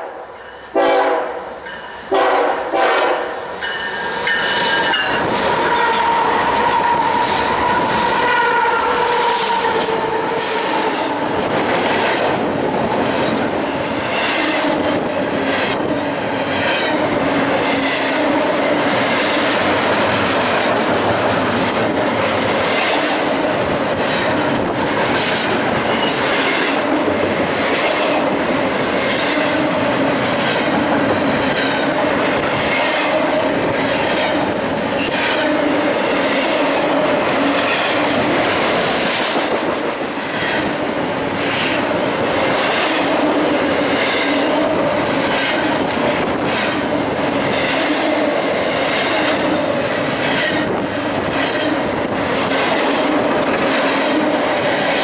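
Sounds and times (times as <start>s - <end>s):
freight train rumble: 0.0s - 55.0s
locomotive horn: 0.1s - 3.4s, 4.6s - 11.0s
wheels clacking over rail joints: 9.2s - 55.0s.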